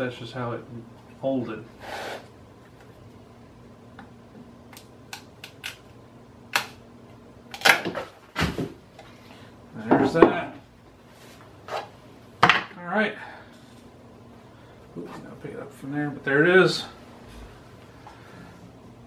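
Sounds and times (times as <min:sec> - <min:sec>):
hard pieces knocking on wooden workbench: 0:12.4 - 0:12.7.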